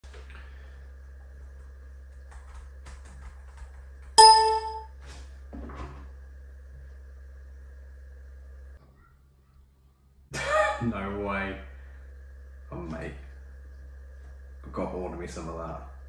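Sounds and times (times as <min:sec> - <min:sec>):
steady low hum: 0:00.0 - 0:16.0
phone notification chime: 0:04.2 - 0:04.9.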